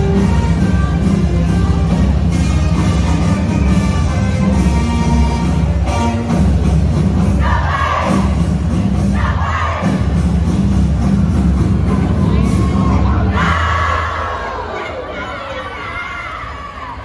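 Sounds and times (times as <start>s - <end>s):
heavy-bass music track: 0.0s - 14.4s
group shouting and cheering: 7.4s - 8.5s, 9.1s - 10.1s, 12.1s - 17.0s.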